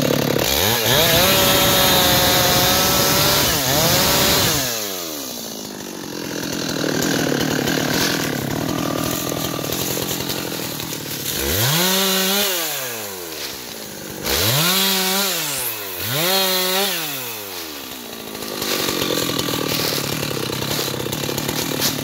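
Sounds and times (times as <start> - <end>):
chainsaw revving: 0.0 - 22.0.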